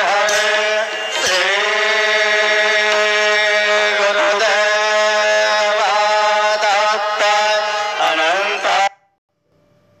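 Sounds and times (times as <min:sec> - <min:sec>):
devotional singing: 0:00.0 - 0:08.9.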